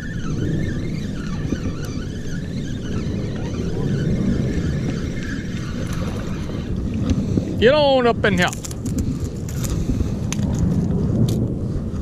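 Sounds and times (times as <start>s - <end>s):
faint wavering whine: 0.0s - 7.6s
fishing reel cranking: 0.0s - 7.6s
wind on microphone: 0.0s - 12.0s.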